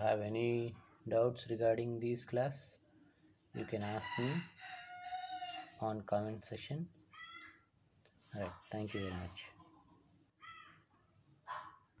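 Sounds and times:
faint bird calls: 7.1s - 7.7s, 8.9s - 11.8s.

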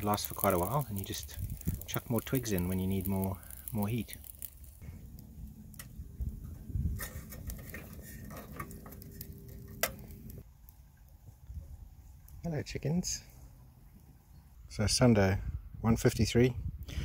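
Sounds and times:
fire drawing rush: 0.0s - 10.4s
twigs crackling and popping in fire: 0.0s - 13.2s.

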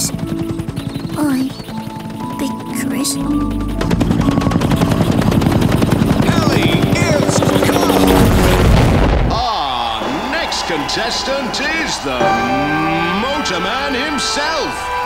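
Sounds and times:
background music: 0.0s - 8.6s, 10.6s - 15.0s
cartoon helicopter rotor chopping: 0.0s - 9.9s.

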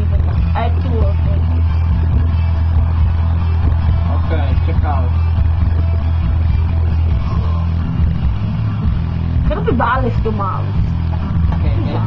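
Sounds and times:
loud low hum: 0.0s - 12.0s.

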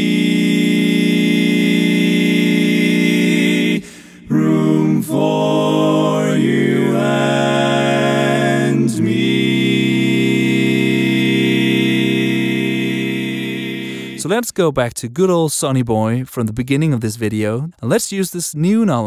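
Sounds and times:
barbershop quartet singing: 0.0s - 14.3s.

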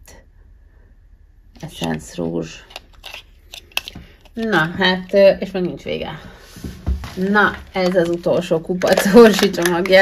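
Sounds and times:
plastic tubes clicking together: 2.6s - 4.6s, 7.8s - 10.0s.

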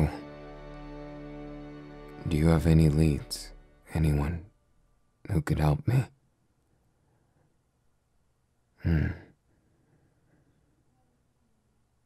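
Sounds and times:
man saying hmm: 8.8s - 9.4s.

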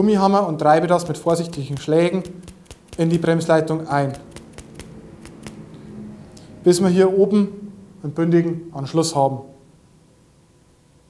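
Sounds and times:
rubber mallet tapping: 1.0s - 3.4s, 4.2s - 5.6s.

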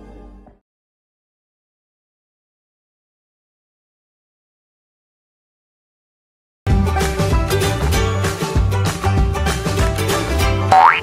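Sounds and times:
upbeat music with steady beat: 6.7s - 11.0s.

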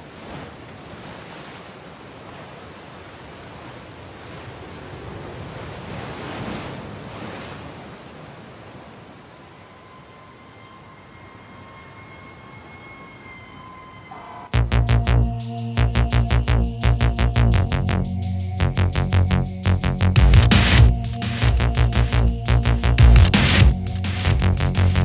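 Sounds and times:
waves breaking: 0.0s - 13.5s.

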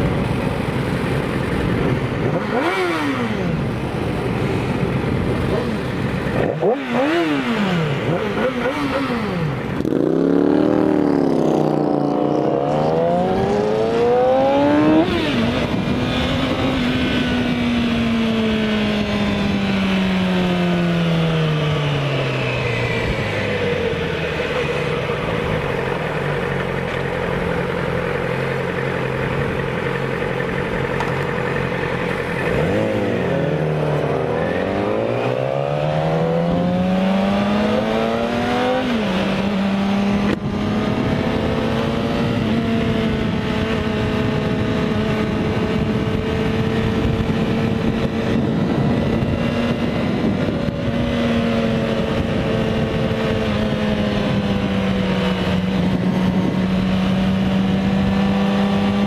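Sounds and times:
wind noise: 0.0s - 26.6s, 31.5s - 59.0s
motorcycle engine accelerating: 0.0s - 59.0s.

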